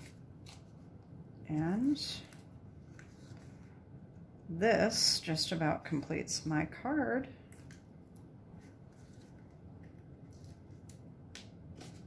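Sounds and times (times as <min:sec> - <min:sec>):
handling of card stock: 0:00.0 - 0:00.9, 0:01.5 - 0:03.8, 0:08.6 - 0:12.0.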